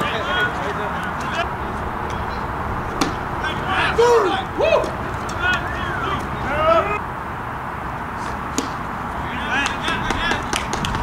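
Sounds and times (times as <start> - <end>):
voices shouting: 0.0 - 7.2, 9.1 - 10.7
wooden bat hitting ball: 2.9 - 3.4, 8.5 - 8.8.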